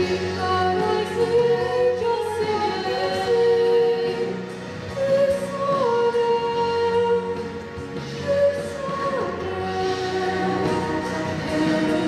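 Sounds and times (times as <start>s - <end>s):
sustained backing music: 0.0s - 12.0s
woman singing: 0.0s - 12.0s.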